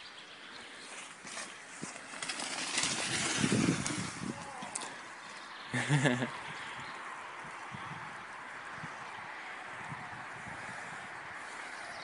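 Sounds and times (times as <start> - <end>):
bike tyres rustling through leaves: 0.4 - 12.0.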